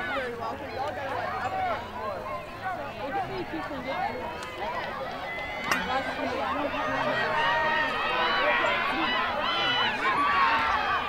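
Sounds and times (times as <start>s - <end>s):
overlapping voices calling and chatting: 0.0s - 11.0s.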